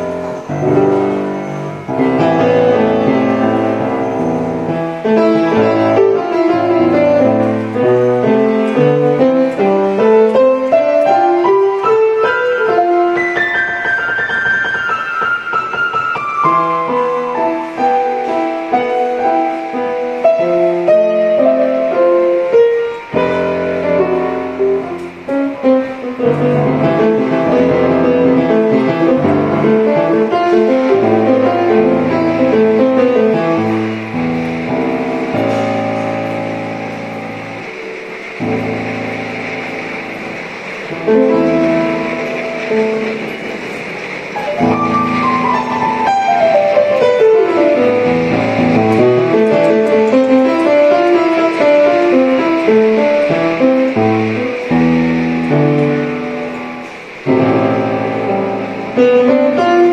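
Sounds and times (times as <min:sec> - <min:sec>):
piano music: 0:00.0 - 0:59.9.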